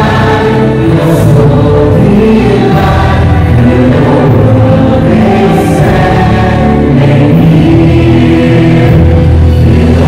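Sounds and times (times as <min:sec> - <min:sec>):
vocal group singing into microphones: 0:00.0 - 0:10.0.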